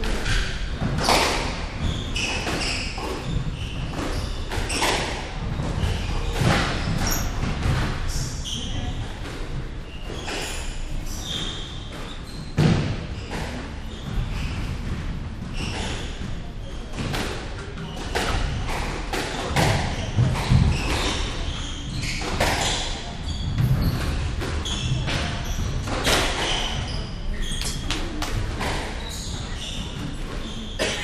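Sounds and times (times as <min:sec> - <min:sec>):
shoe squeaks: 0:00.0 - 0:09.2, 0:09.8 - 0:17.0, 0:17.6 - 0:31.0.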